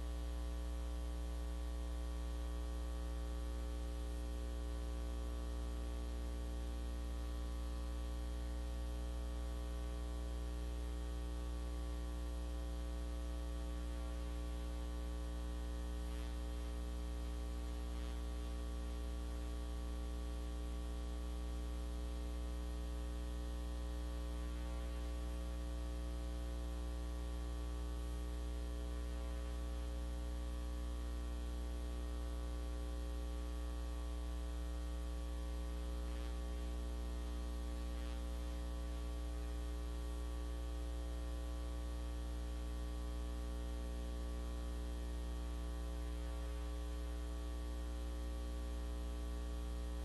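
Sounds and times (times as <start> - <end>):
electrical mains hum: 0.0 - 50.0.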